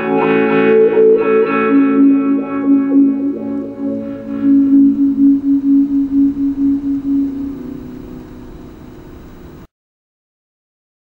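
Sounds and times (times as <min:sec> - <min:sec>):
electric guitar note ringing: 0:00.0 - 0:09.7.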